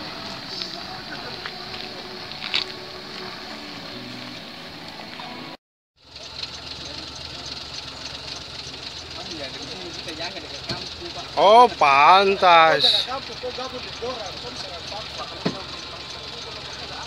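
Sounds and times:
faint voices: 0:00.0 - 0:05.0, 0:09.1 - 0:17.0
low murmured voices outdoors: 0:00.0 - 0:05.6, 0:06.6 - 0:17.0
truck engine idling: 0:00.0 - 0:17.0.

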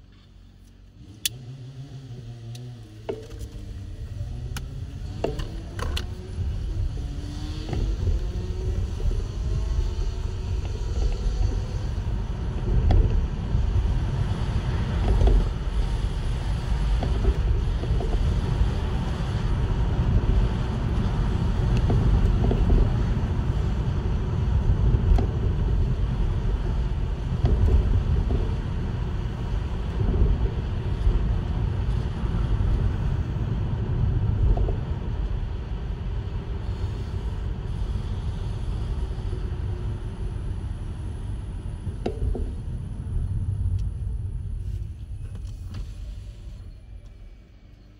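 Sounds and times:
vehicle rumbling on the move: 0:00.0 - 0:47.9.

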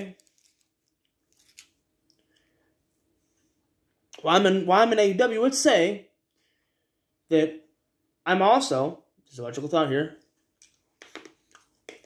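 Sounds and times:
man speaking: 0:00.0 - 0:00.2, 0:04.2 - 0:06.1, 0:07.3 - 0:07.7, 0:08.3 - 0:10.2.

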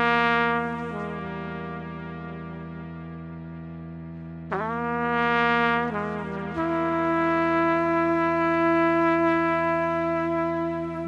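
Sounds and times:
solo trumpet playing slow notes: 0:00.0 - 0:03.6, 0:04.5 - 0:11.0.

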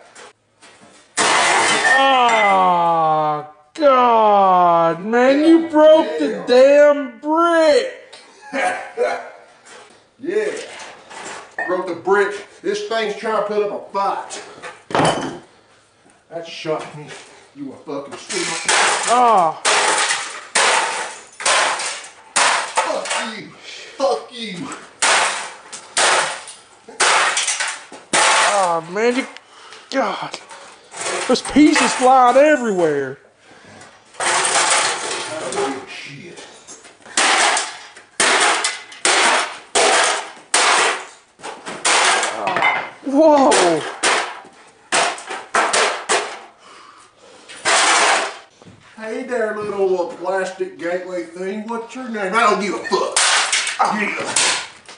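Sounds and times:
sledgehammer smashing computer parts: 0:01.1 - 0:02.5, 0:18.3 - 0:23.3, 0:25.0 - 0:29.0, 0:34.2 - 0:35.7, 0:37.1 - 0:42.6, 0:43.4 - 0:46.5, 0:47.6 - 0:48.5, 0:53.0 - 0:54.8.

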